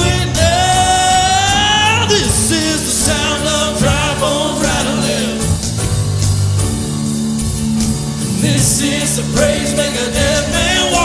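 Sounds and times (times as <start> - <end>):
worship band playing: 0.0 - 11.0.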